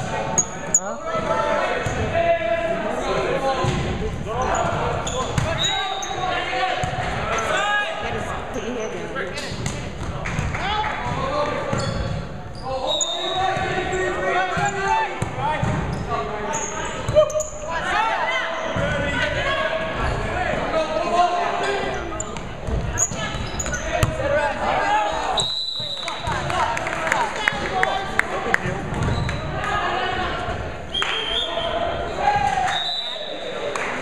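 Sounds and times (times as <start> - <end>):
voices calling and talking: 0.0 - 34.0.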